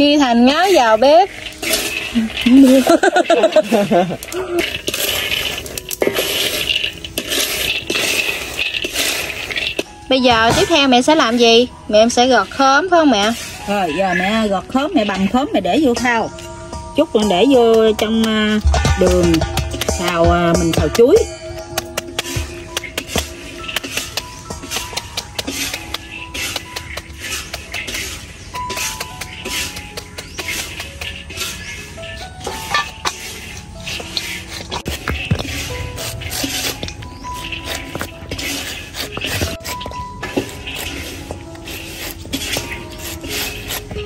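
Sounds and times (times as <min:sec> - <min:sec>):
held melody: 0:09.6 - 0:44.0
light percussive beat: 0:16.0 - 0:31.2.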